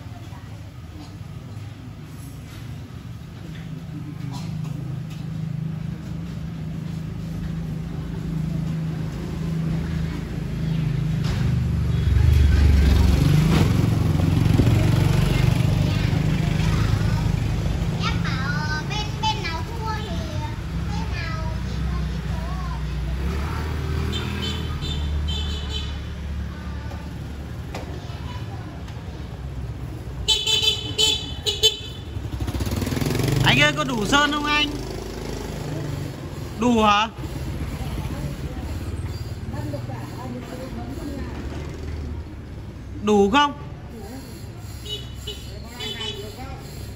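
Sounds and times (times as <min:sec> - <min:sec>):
engine and traffic rumble: 0:00.0 - 0:46.9
vehicle horn honking: 0:24.1 - 0:26.0, 0:30.2 - 0:32.2, 0:44.8 - 0:46.4.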